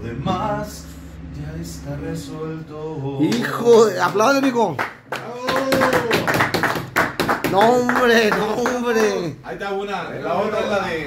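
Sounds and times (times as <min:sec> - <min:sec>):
people clapping: 0:03.3 - 0:09.4.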